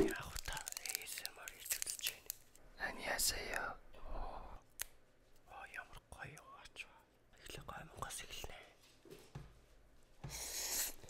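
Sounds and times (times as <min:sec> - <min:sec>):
man whispering: 0:00.0 - 0:04.6, 0:05.4 - 0:08.8.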